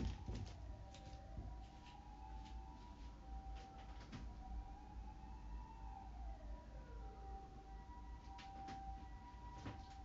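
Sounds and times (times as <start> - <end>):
faint distant siren wail: 0.0 - 10.0.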